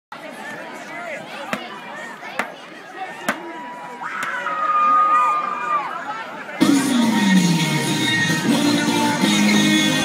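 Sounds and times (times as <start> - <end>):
crowd chatter: 0.1 - 10.0.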